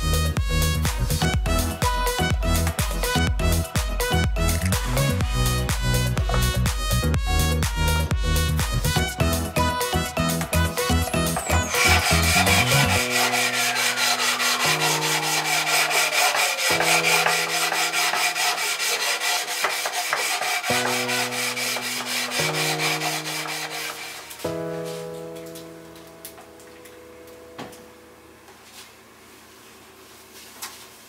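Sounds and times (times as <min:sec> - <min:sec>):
background music with held chords: 0:00.0 - 0:19.7, 0:20.6 - 0:29.2
hand sanding wood: 0:10.3 - 0:25.0
long falling sweep: 0:11.4 - 0:18.0.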